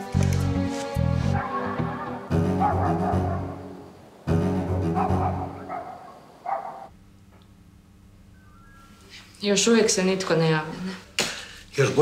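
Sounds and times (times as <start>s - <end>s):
dog barking: 1.3s - 3.6s, 4.9s - 6.9s
faint steady hum: 3.4s - 12.0s.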